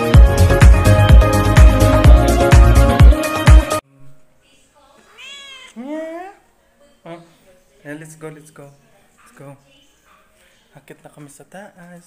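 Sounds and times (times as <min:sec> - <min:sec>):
cat meowing: 0:05.1 - 0:06.2.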